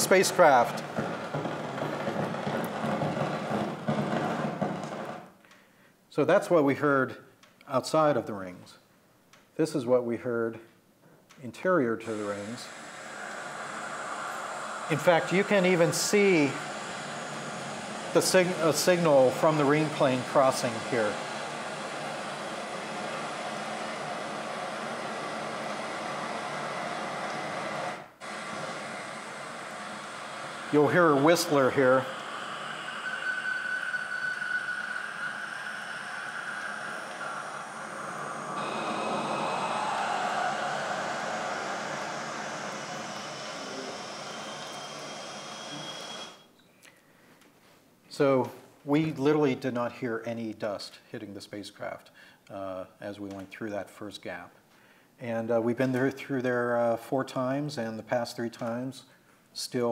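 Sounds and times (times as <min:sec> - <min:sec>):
steady hiss of plasma waves: 0:00.0 - 0:04.6, 0:11.8 - 0:46.5.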